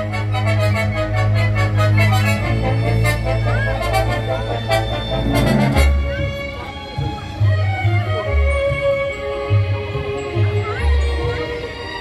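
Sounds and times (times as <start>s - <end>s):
brass: 0.0s - 6.6s
symphony orchestra playing: 2.4s - 6.7s
low bass note: 4.8s - 6.4s.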